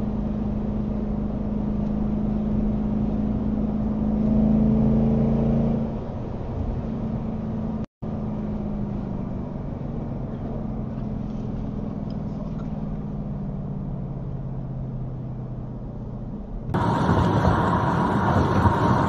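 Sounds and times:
car road and engine hum: 0.0 - 19.0.

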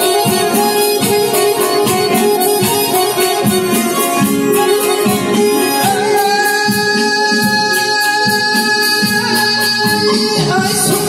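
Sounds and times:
live band music: 0.0 - 11.0
plucked string instrument: 0.0 - 11.0
man singing into microphone: 4.9 - 11.0.

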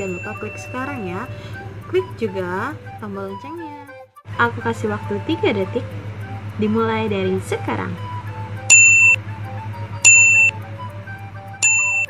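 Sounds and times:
background music: 0.0 - 12.0
electronic countdown beeps: 5.0 - 11.0, 11.6 - 12.0.

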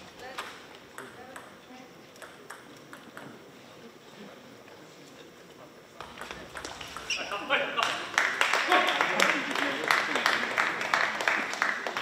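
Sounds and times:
table tennis balls clicking: 0.3 - 3.4, 6.0 - 7.2.

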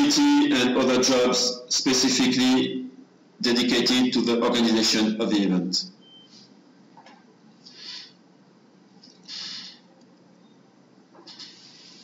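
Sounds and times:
faint microphone hiss: 0.0 - 12.0
soft breath: 7.6 - 8.2.

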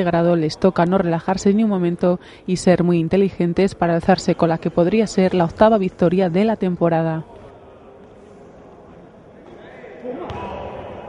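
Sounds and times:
echoing sports hall ambience: 0.0 - 11.0
basketball bouncing: 10.2 - 10.6.

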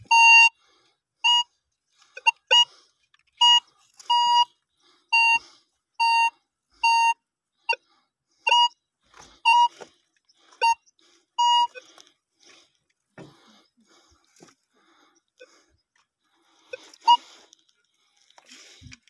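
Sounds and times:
metal detector beeping: 0.0 - 0.6, 1.2 - 7.8, 8.4 - 12.0, 16.7 - 17.6.

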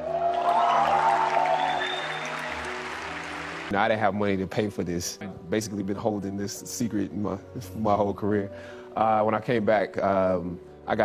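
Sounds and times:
large audience applauding: 0.0 - 3.7
instrumental background music: 0.0 - 11.0.

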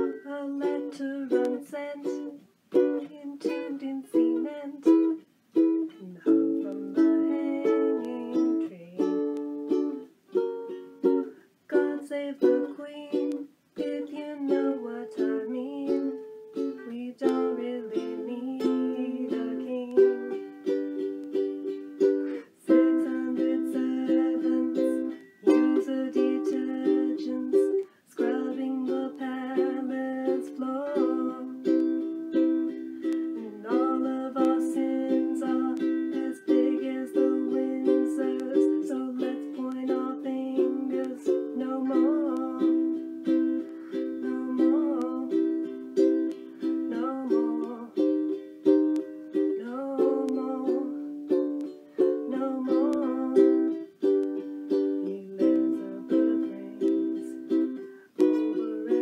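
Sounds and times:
ukulele strumming chords: 0.0 - 59.0.

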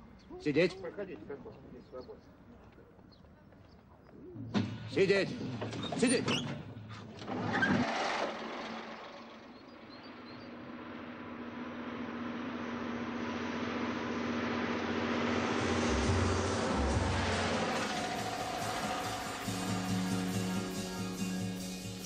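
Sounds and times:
bus passing by: 7.3 - 22.0.

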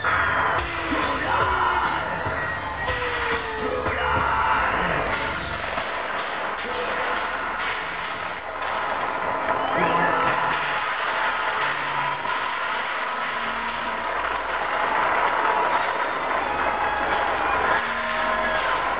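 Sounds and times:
crowd shouting and cheering: 0.0 - 18.9.

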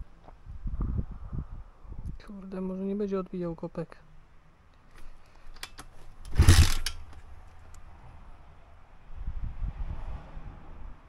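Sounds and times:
engine chugging without catching: 6.2 - 7.2.

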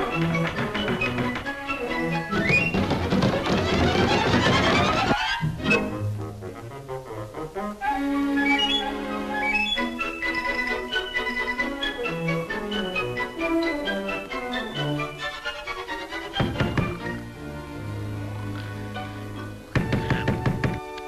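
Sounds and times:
climbing run of notes: 0.0 - 7.5
orchestral cartoon music: 0.0 - 21.0.

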